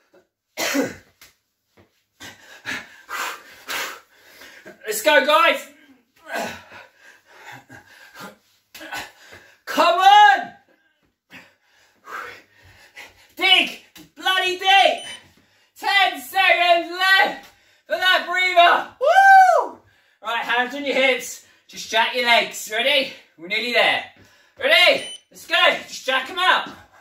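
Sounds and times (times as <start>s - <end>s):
man shouting: 9.7s - 10.6s, 13.4s - 15.1s, 15.8s - 19.8s.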